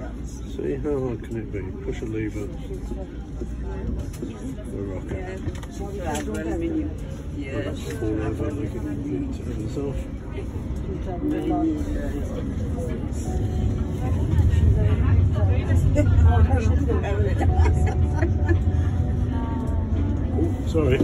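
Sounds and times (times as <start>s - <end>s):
passengers chattering: 0.0s - 21.0s
tram rumble: 0.0s - 21.0s.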